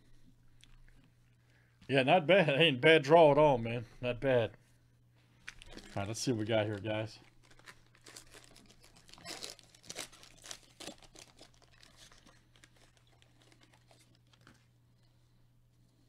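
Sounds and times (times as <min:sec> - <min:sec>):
foil wrapper tearing and crinkling: 0:05.6 - 0:14.6.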